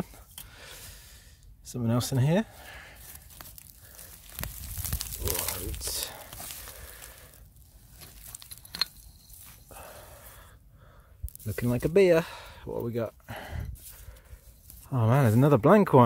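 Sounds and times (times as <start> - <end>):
hand scraping through ash soil: 0.0 - 10.5, 11.3 - 16.0
gritty clinker crunching: 1.8 - 10.5, 11.2 - 16.0
roots tearing: 2.0 - 10.5, 11.2 - 16.0.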